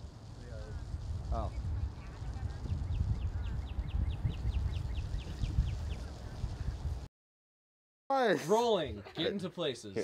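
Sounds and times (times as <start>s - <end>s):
wind rumbling on microphone: 0.0s - 7.1s
bird chirping rapidly: 2.6s - 6.8s.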